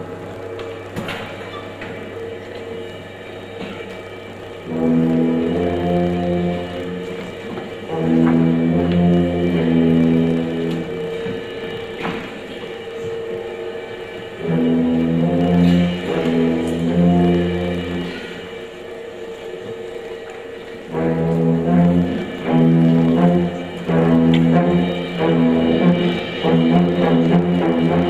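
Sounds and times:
concert band playing chords: 0:04.6 - 0:12.2, 0:14.4 - 0:18.6, 0:20.9 - 0:28.0.

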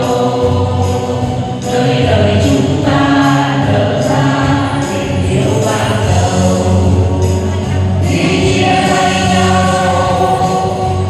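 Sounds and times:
group singing in chorus: 0:00.0 - 0:11.0
instrumental accompaniment: 0:00.0 - 0:11.0.

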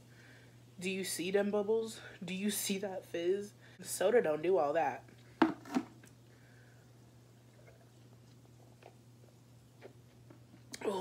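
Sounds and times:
faint electrical hum: 0:00.0 - 0:11.0
gulps of fizzy drink: 0:07.3 - 0:09.0.

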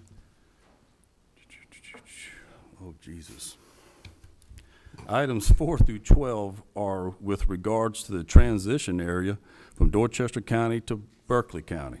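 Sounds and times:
person whispering: 0:01.4 - 0:03.7.

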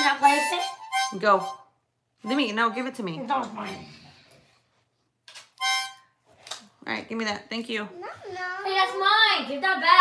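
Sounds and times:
harmonica note: 0:00.0 - 0:04.2, 0:05.6 - 0:06.2.

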